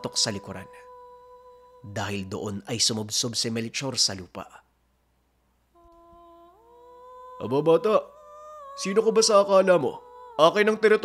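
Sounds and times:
sustained tone: 0.0s - 3.2s, 5.8s - 11.0s.

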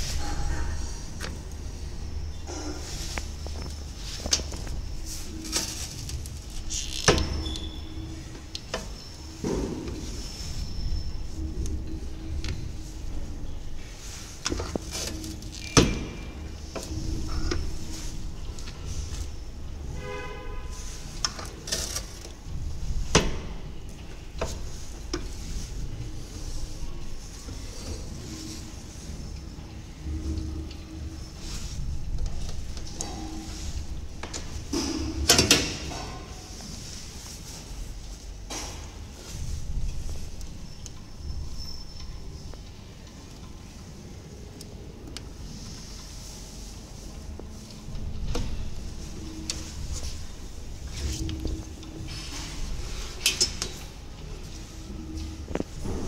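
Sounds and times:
steady low hum: 0.0s - 56.0s
metal clanks and knocks: 5.3s - 10.2s, 32.1s - 36.5s.

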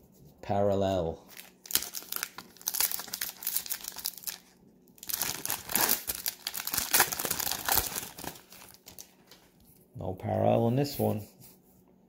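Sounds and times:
foil wrapper crinkling: 1.3s - 9.6s.

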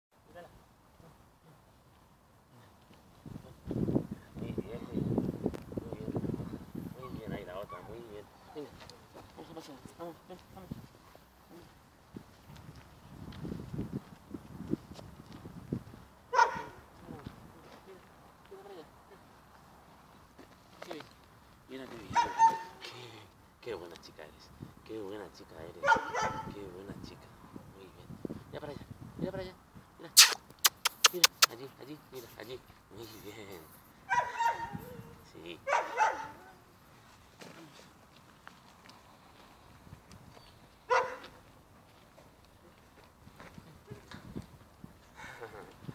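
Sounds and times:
dog barking: 16.3s - 16.8s, 22.1s - 22.8s, 25.8s - 26.6s, 34.1s - 35.0s, 35.7s - 36.5s, 40.9s - 41.4s
dog vocalising high-pitched: 30.2s - 31.5s.

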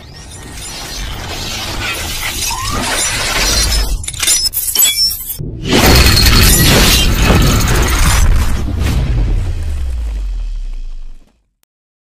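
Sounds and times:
loud deep hit: 5.4s - 11.2s.

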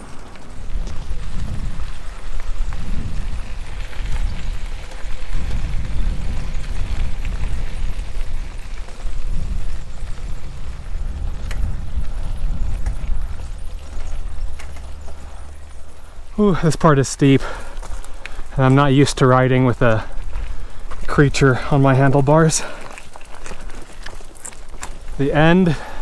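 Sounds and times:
bicycle tyres on gravel: 0.0s - 26.0s
wind buffeting microphone: 0.0s - 26.0s.

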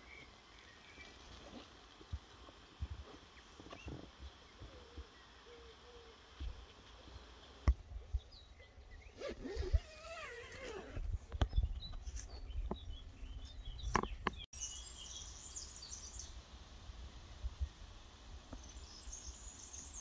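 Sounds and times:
small birds chirping: 0.0s - 16.4s, 18.4s - 20.0s
wind rumble on microphone: 10.8s - 14.4s.

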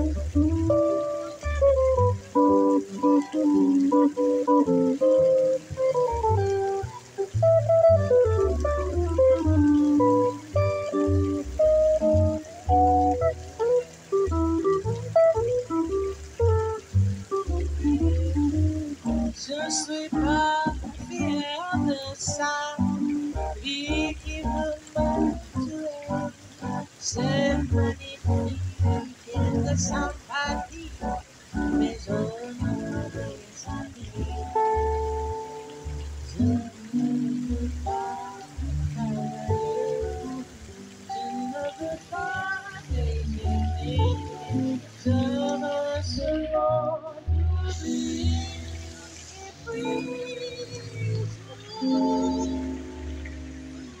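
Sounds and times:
electric guitar melody: 0.0s - 54.0s
plucked double bass: 0.0s - 54.0s.

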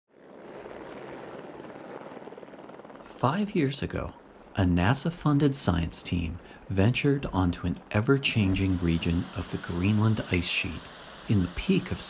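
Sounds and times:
helicopter rotor and engine drone: 0.1s - 6.6s, 7.3s - 12.0s.

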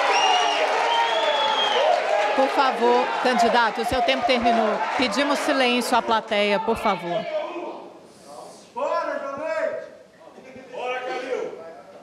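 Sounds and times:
audience applauding: 0.0s - 6.0s
crowd of voices: 0.0s - 12.0s.

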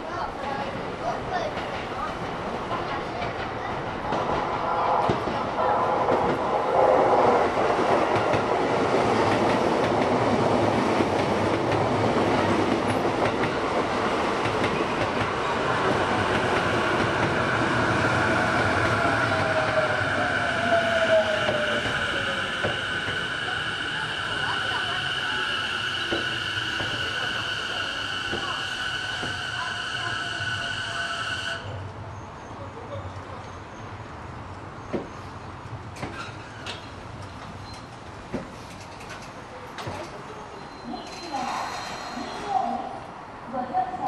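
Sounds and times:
train wheels clacking: 7.4s - 20.0s, 21.1s - 30.6s.

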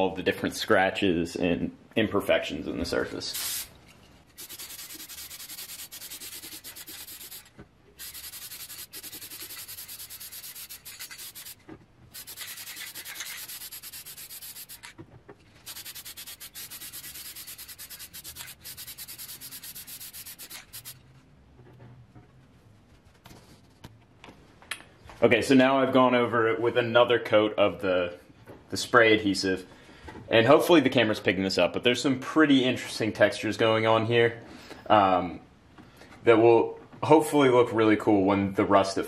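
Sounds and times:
aerosol spray can hissing: 3.4s - 3.7s, 4.4s - 14.9s, 15.6s - 21.0s.

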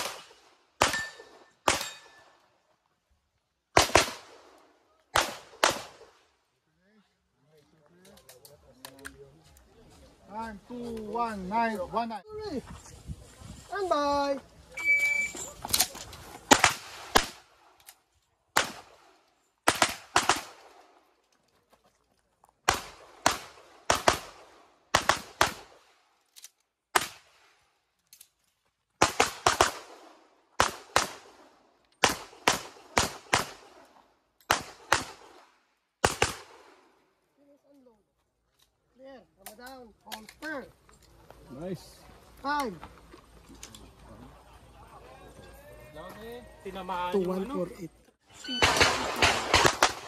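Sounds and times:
pistol shots: 0.0s - 2.3s, 3.7s - 6.2s, 16.5s - 17.5s, 18.5s - 20.8s, 22.6s - 25.9s, 29.0s - 33.8s, 34.5s - 36.8s, 48.6s - 50.0s
man talking: 41.4s - 42.8s, 43.9s - 48.0s.

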